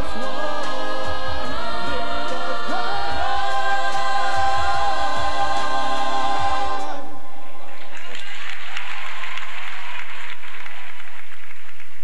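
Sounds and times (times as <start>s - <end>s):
chorus singing held notes: 0.0s - 7.6s.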